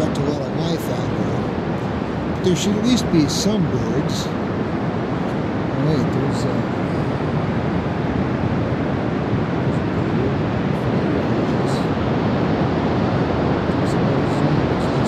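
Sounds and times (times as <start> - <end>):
distant breaking surf: 0.0 - 15.0
wind buffeting microphone: 0.0 - 15.0.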